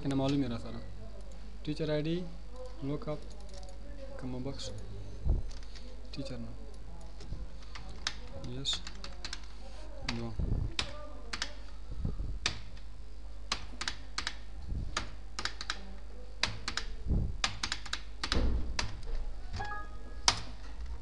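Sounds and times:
steady low hum: 4.5 - 21.0
keyboard typing: 7.0 - 11.6, 13.5 - 21.0.

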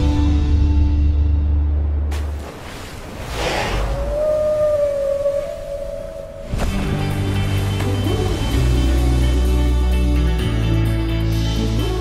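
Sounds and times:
humpback whale call: 3.8 - 6.5.

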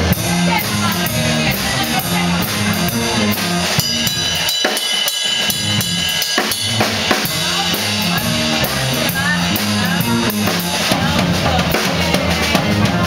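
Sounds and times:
drums and cymbals: 0.0 - 13.0
live jazz band playing: 0.0 - 13.0.

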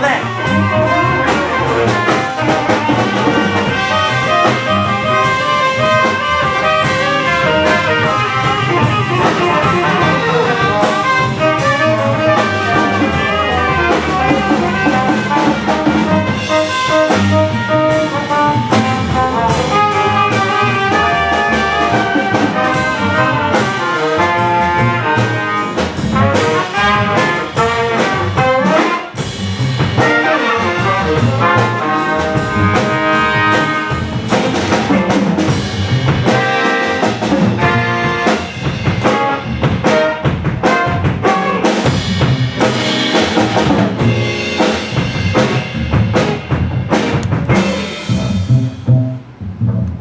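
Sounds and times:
jazz combo playing: 0.0 - 50.0.

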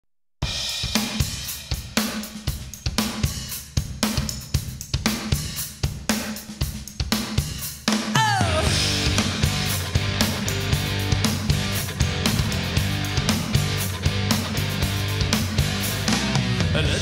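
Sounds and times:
drum kit beat: 0.4 - 17.0.

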